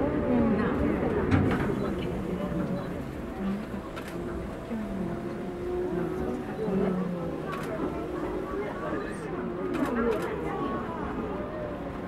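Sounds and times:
passengers chattering: 0:00.0 - 0:12.0
train low rumble: 0:00.0 - 0:12.0.

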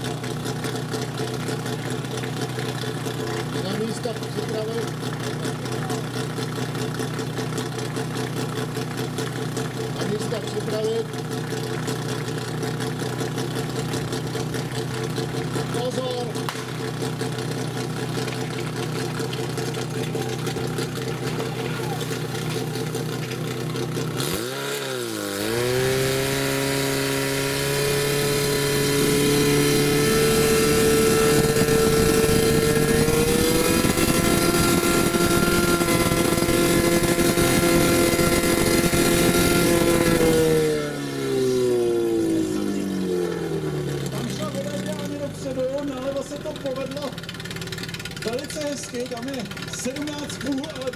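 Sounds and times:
pump engine revving: 0:00.0 - 0:50.9.

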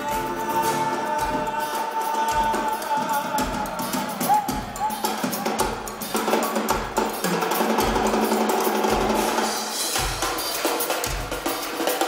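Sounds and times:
bass drum beat: 0:00.0 - 0:07.2
live band music: 0:00.0 - 0:12.0.

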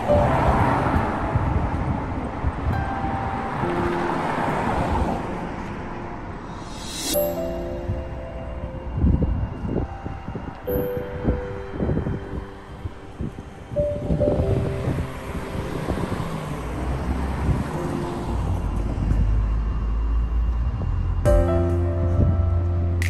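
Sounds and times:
wind buffeting microphone: 0:00.0 - 0:22.8
background music with held notes: 0:00.0 - 0:23.0
low rumble: 0:00.0 - 0:23.0
street ambience: 0:00.0 - 0:23.0.

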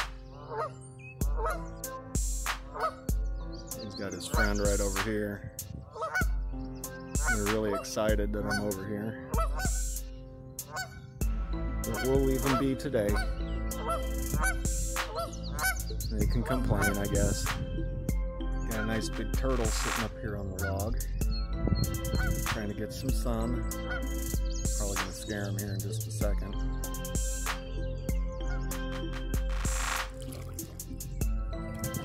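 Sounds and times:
geese honking: 0:00.0 - 0:17.6, 0:18.6 - 0:21.2, 0:21.9 - 0:32.0
goose honking: 0:00.3 - 0:00.8, 0:01.4 - 0:01.9, 0:02.6 - 0:03.1, 0:04.1 - 0:05.0, 0:05.8 - 0:06.4, 0:07.2 - 0:11.1, 0:11.8 - 0:17.5, 0:23.6 - 0:25.8.

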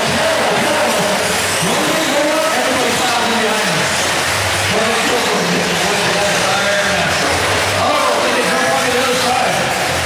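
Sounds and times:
rc car engines buzzing: 0:00.0 - 0:10.0.

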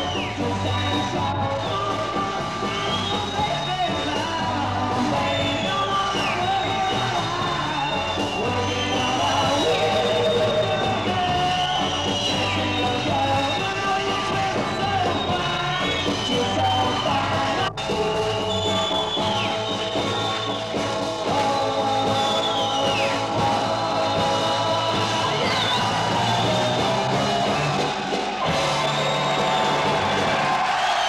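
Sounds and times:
person singing: 0:00.0 - 0:29.5
rock and roll band playing: 0:00.0 - 0:31.0.

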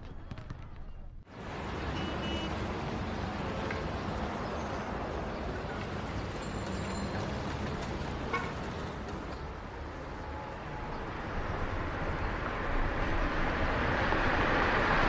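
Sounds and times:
car engine and tyre noise: 0:00.0 - 0:15.0
street hum: 0:00.0 - 0:15.0.

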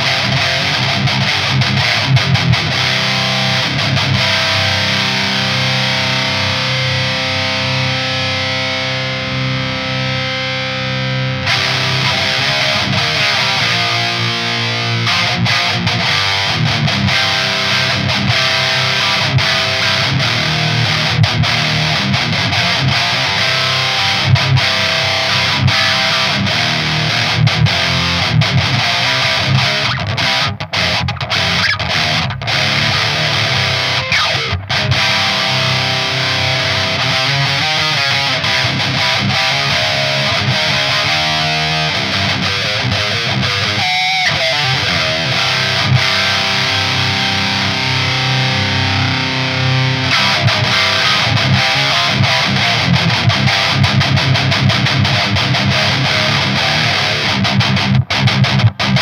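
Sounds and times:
distorted electric guitar riffing: 0:00.0 - 0:59.0.

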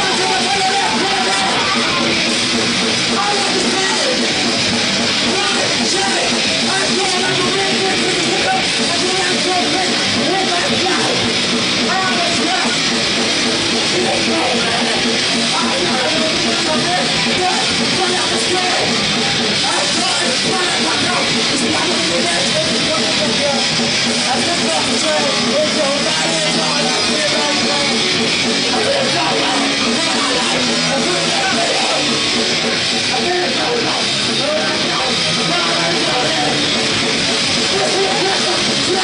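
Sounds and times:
heavy metal band playing live: 0:00.0 - 0:39.0.

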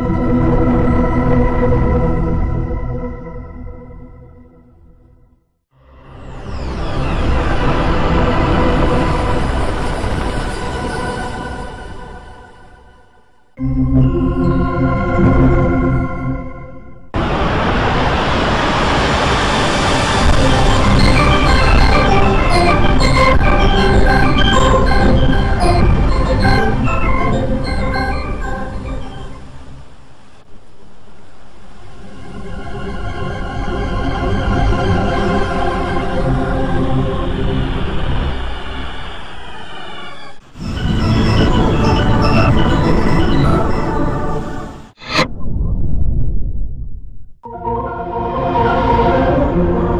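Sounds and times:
dense rushing startup chime: 0:05.9 - 0:15.8, 0:17.1 - 0:30.4, 0:31.5 - 0:45.4
loud dense low rumble: 0:17.2 - 0:26.9.

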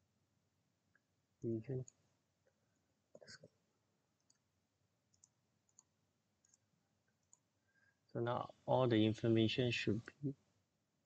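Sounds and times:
faint computer mouse clicks: 0:04.2 - 0:04.4, 0:05.1 - 0:06.6.

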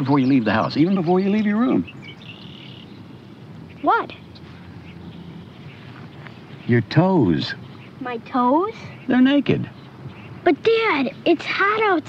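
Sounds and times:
outdoor background noise and hiss: 0:00.0 - 0:12.0
boy saying what: 0:03.8 - 0:04.2, 0:10.5 - 0:12.0.

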